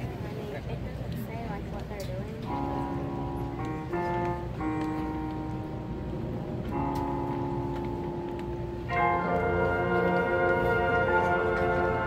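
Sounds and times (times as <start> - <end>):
marching band playing chords: 2.4 - 12.0.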